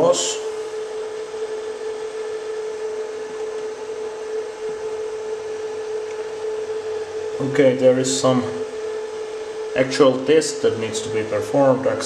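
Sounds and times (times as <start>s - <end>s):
cooling fan whirring: 0.0s - 12.0s.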